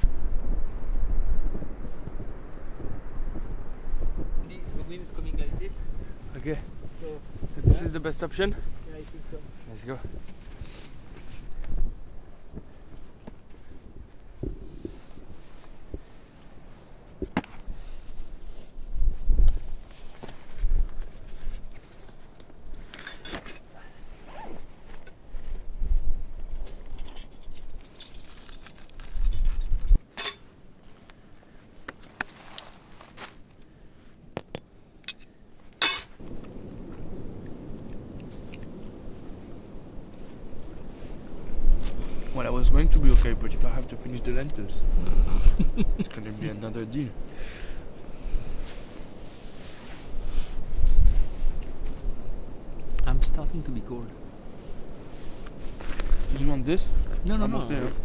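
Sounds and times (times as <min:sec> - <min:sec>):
wind buffeting microphone: 0:00.0 - 0:22.9, 0:24.0 - 0:27.9, 0:28.5 - 0:30.0, 0:36.2 - 0:58.0.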